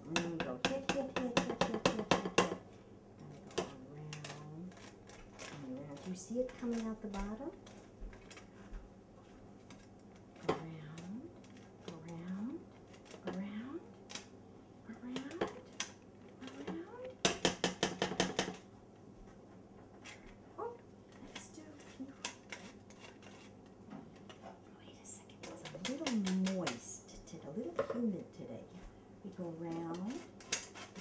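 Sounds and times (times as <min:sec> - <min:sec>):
flour sifter clicking and rattling: 0:03.4 - 0:08.6, 0:25.4 - 0:26.8.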